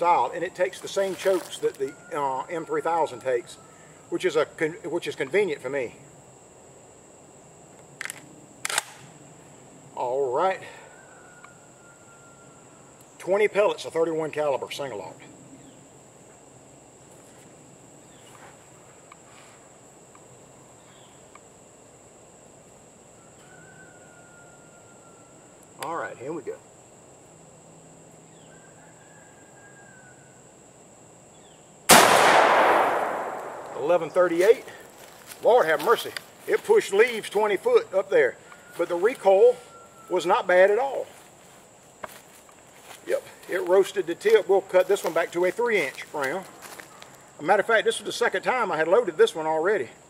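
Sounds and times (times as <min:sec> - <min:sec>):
steady high-pitched whine: 0:00.0 - 0:50.0
shotgun mechanical clicks: 0:08.0 - 0:09.1
shotgun blast echoing: 0:31.9 - 0:34.2.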